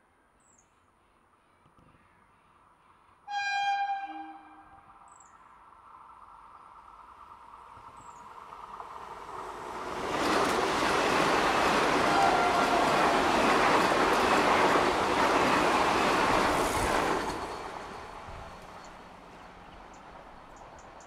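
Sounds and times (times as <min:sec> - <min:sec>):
train horn blast: 0:03.3 - 0:05.0, 0:12.0 - 0:13.5
train wheels rushing on rails: 0:06.8 - 0:21.0.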